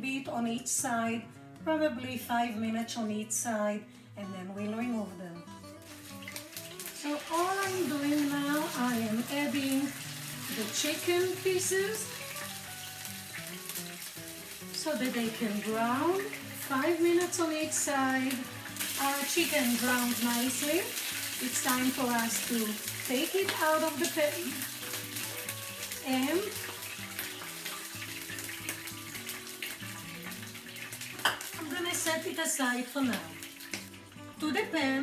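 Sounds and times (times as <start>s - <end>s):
background music: 0.0s - 35.0s
chicken sizzling in hot oil: 5.7s - 34.2s.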